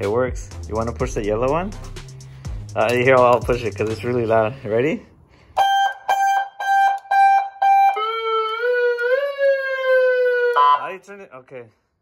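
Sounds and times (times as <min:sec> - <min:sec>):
pulsed beeping siren tone: 0:05.6 - 0:11.0
continuous siren tone: 0:05.6 - 0:11.1.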